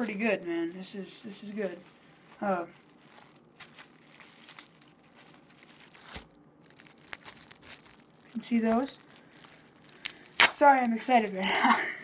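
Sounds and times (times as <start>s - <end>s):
plastic bag crinkling: 0.0s - 11.5s.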